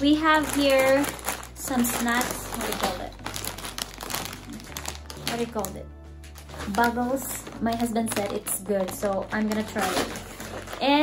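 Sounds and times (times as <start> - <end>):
chip bag crinkling: 0.0 - 11.0.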